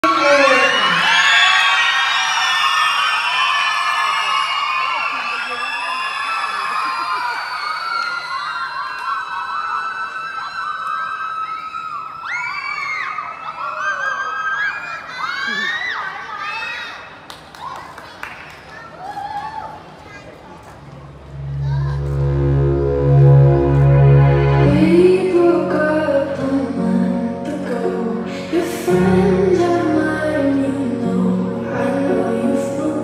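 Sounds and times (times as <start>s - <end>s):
crowd cheering and shouting: 0.0s - 17.2s.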